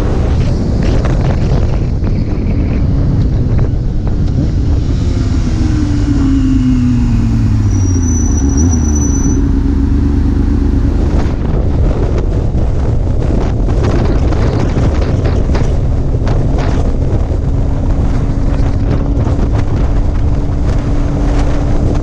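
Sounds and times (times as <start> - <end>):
wind on microphone: 0.0 - 22.0
motorbike engine: 3.0 - 22.0.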